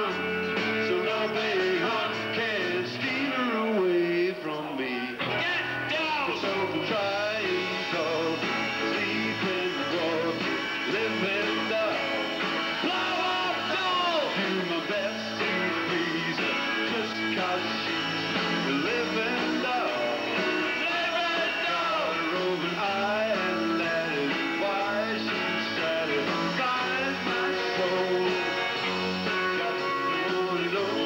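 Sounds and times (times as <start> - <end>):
bass guitar: 0.0 - 31.0
electric guitar: 0.0 - 31.0.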